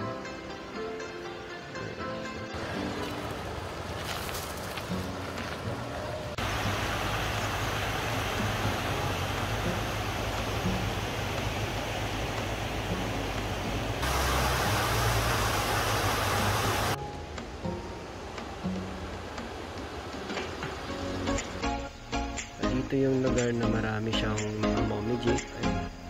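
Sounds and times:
soft background music: 0:00.0 - 0:26.0
river rapids rushing: 0:02.5 - 0:21.8.

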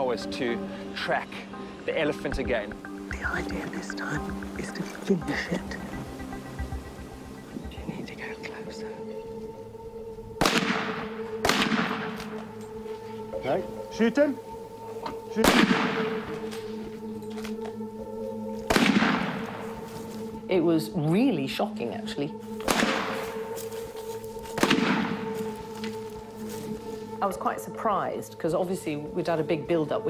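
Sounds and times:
low music drone: 0:00.0 - 0:30.0
rifle shot: 0:10.4 - 0:12.3, 0:15.4 - 0:16.1, 0:18.7 - 0:19.5, 0:22.7 - 0:23.2, 0:24.6 - 0:25.2.

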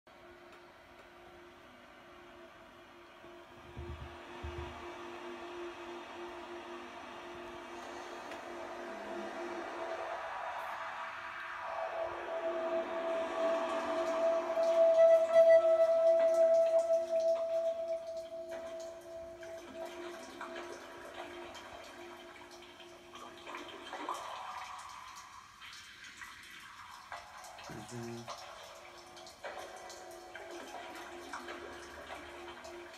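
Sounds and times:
electronic ambient drone: 0:00.1 - 0:24.5.

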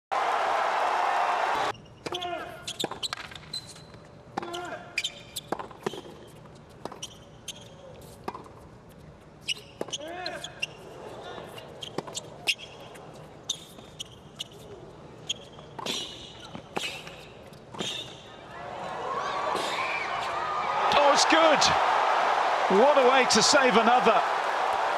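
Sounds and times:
tennis ball hits and bounces: 0:05.4 - 0:07.1, 0:08.2 - 0:08.6
players grunting: 0:20.8 - 0:24.9.

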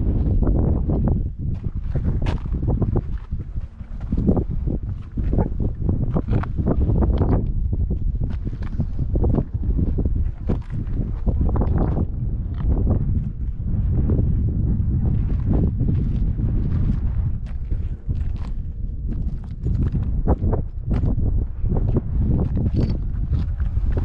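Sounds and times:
steady low rumble: 0:00.0 - 0:24.0
footsteps crunching on rock: 0:01.0 - 0:13.6, 0:15.0 - 0:24.0.

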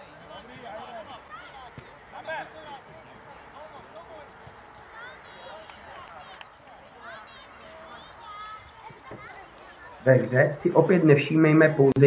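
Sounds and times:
children shouting: 0:00.9 - 0:02.6, 0:04.6 - 0:10.1.

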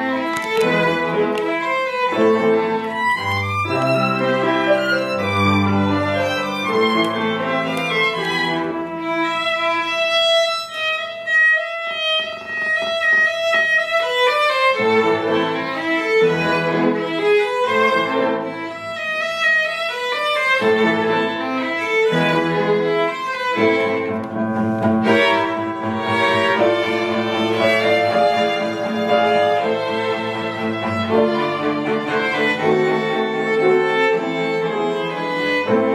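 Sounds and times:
bowed strings playing melody: 0:00.0 - 0:35.9
piano accompaniment: 0:00.0 - 0:35.9.

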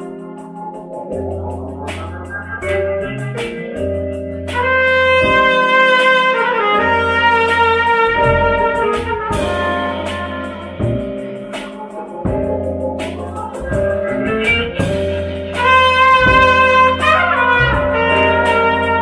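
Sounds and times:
live band music: 0:00.0 - 0:19.0
trumpet holding long notes: 0:04.6 - 0:11.5, 0:14.2 - 0:19.0.

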